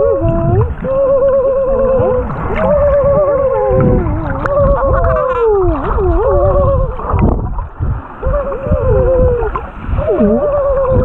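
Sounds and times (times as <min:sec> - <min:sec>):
underwater whistle-like calls: 0:00.0 - 0:07.2, 0:08.2 - 0:11.0
low underwater rumble: 0:00.0 - 0:11.0.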